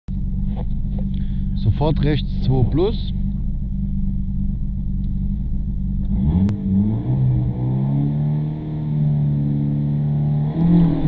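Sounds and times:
car engine running steadily: 0.1 - 11.0.

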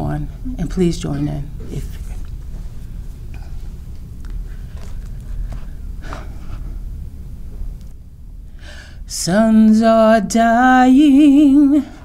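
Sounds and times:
low room rumble: 0.0 - 12.0
woman singing unaccompanied: 9.1 - 12.0.

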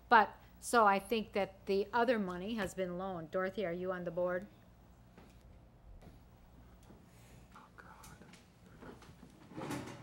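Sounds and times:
low room hum: 0.0 - 10.0.

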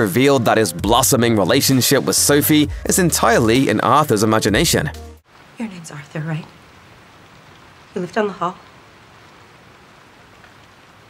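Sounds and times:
faint hiss of rain: 5.2 - 11.0.

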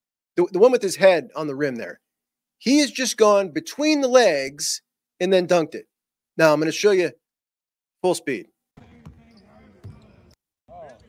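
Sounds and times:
basketball bouncing on hardwood: 8.8 - 11.0.

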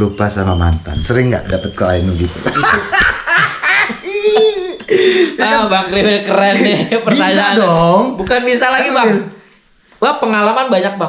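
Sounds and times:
men laughing: 2.3 - 8.0.

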